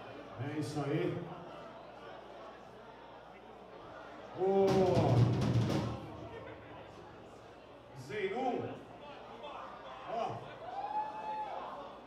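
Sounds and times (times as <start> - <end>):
drum kit hits: 4.7 - 6.5.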